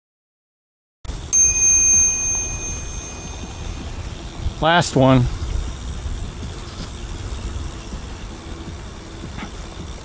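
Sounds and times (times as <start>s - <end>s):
bicycle bell ringing: 1.3s - 4.6s.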